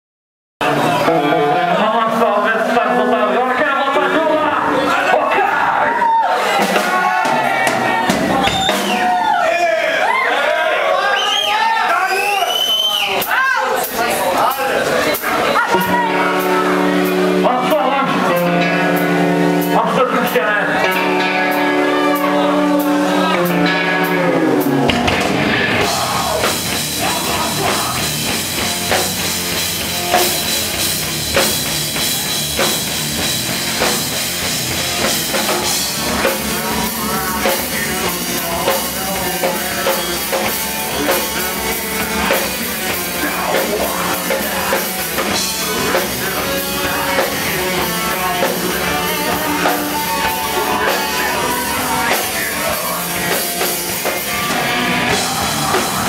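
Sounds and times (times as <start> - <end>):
drum kit: 0.6 - 10.3, 11.3 - 56.0
bass guitar: 0.6 - 10.8, 12.7 - 56.0
live metal band: 0.6 - 56.0
electric guitar: 12.8 - 56.0
man shouting or singing: 25.5 - 29.0, 35.9 - 56.0.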